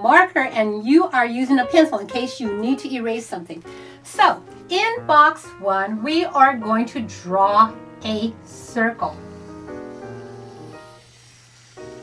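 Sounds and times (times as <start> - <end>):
held chords of background music: 1.0 - 11.0.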